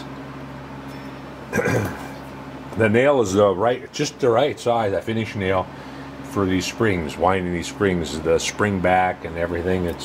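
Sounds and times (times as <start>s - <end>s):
low background hum: 0.0s - 10.0s
man clearing his throat: 1.5s - 2.2s.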